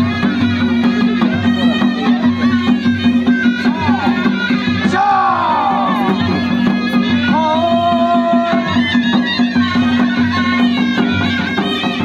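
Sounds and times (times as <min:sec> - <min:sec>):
drums: 0:00.0 - 0:12.0
reed pipe melody: 0:00.0 - 0:12.0.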